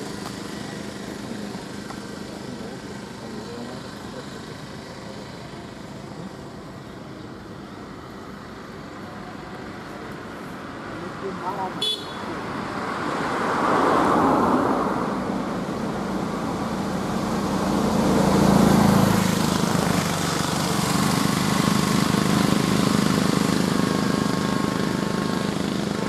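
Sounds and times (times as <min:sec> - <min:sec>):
steady engine drone: 0:00.0 - 0:26.0
vehicle engine and tyres: 0:00.0 - 0:26.0
car passing by: 0:10.5 - 0:26.0.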